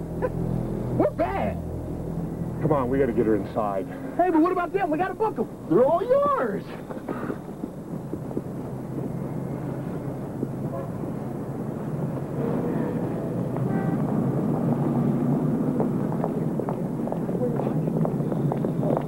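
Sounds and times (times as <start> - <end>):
street traffic rush: 0.0 - 19.0
faint voices: 15.7 - 19.0.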